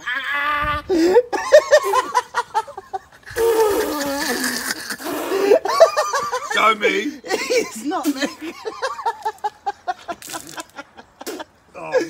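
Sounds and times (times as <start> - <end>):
man retching groan: 3.4 - 5.7.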